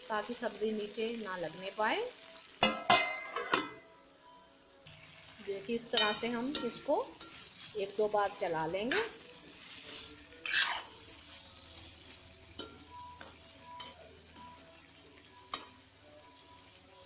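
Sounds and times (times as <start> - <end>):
vegetables sizzling faintly: 0.0 - 17.0
metal spatula scraping a pan: 5.9 - 15.8
spatula clinking against pan: 6.0 - 7.5, 12.5 - 14.6.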